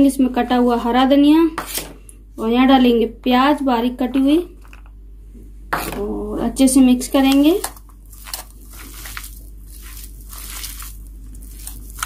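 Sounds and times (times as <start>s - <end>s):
hands mashing potatoes: 7.2s - 12.0s.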